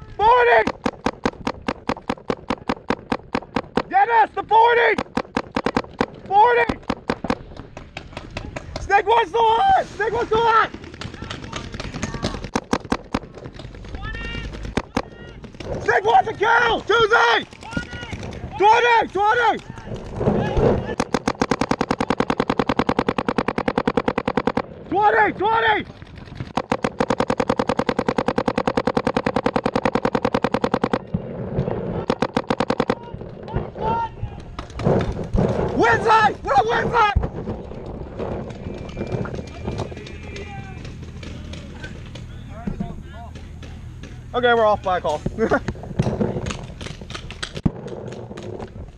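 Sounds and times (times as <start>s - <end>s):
paintball markers firing: 0.2s - 9.0s, 10.1s - 24.9s, 25.7s - 33.6s, 34.3s - 36.8s, 37.4s - 48.9s
person shouting: 33.0s - 34.4s, 35.8s - 37.2s.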